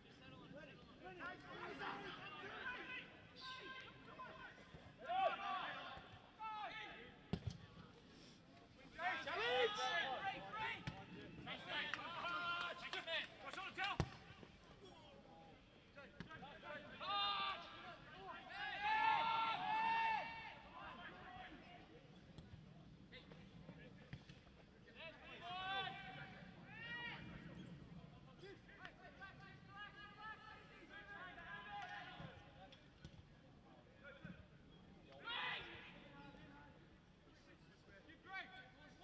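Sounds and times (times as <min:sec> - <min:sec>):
players shouting: 0:09.1 - 0:14.0.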